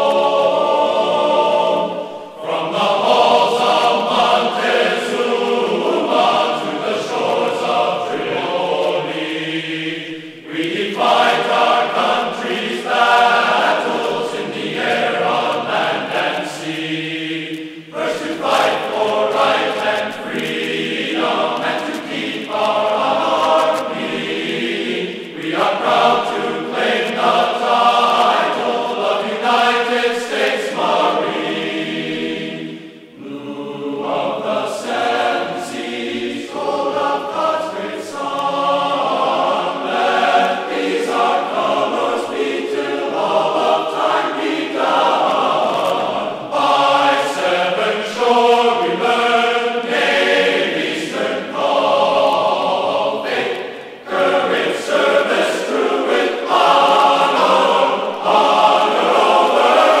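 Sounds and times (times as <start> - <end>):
choir singing with accompaniment: 0.0 - 60.0.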